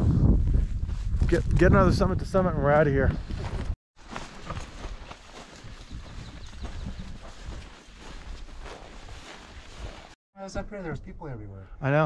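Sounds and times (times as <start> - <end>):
footsteps through dry grass: 3.2 - 10.2.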